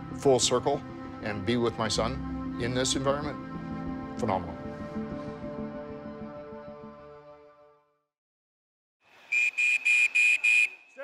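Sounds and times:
referee's whistle blasts: 9.3 - 11.0.

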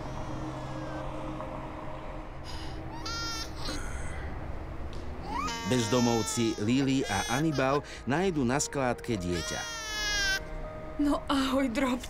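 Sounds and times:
low background hum: 0.0 - 12.0
baby crying: 2.5 - 4.4, 5.2 - 10.4.

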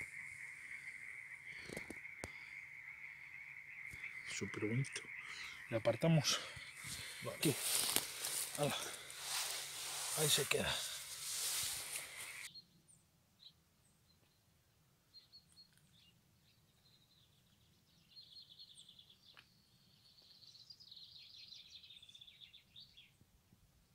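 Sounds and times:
faint birdsong: 0.0 - 23.9.

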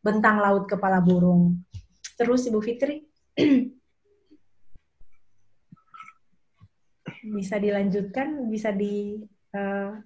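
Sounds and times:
person clearing throat: 3.4 - 3.8, 5.8 - 6.2, 7.0 - 7.3.

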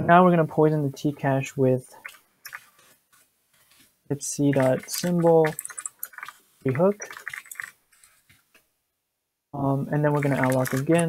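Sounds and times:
keyboard typing: 4.5 - 8.3, 10.1 - 11.0.

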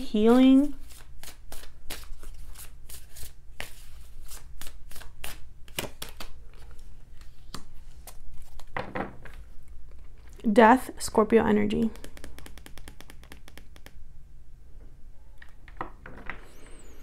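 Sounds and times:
cards being shuffled: 0.8 - 10.4, 11.9 - 14.0.

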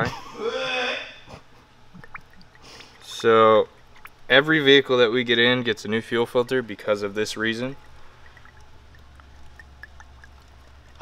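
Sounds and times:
steady low hum: 0.0 - 11.0
fuel dripping onto towel: 1.9 - 11.0.

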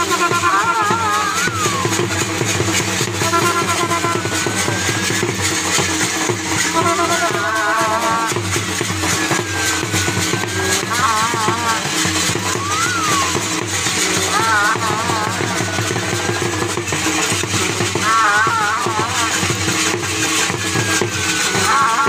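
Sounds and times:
drums beating steady rhythm: 0.0 - 22.0
sliding whistle-like tones: 0.2 - 7.6, 8.2 - 16.5, 20.1 - 22.0
high-pitched warbling phrases: 0.9 - 2.0, 12.5 - 13.4.

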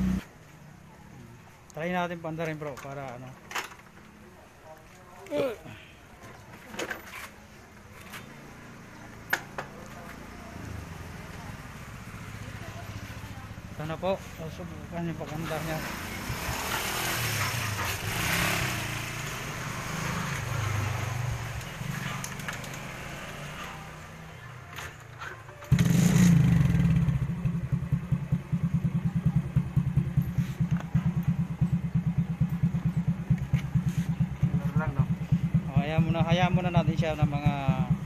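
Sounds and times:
motorcycle engine idling: 25.7 - 38.0.

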